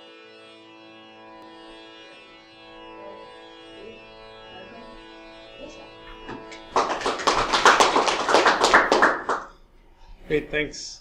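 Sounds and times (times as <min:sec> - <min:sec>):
music: 0:00.0 - 0:11.0
audience applauding: 0:06.3 - 0:09.5.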